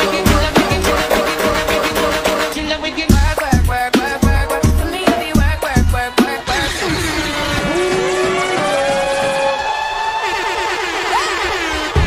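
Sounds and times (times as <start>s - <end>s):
electronic music with sliding synths: 0.0s - 12.0s.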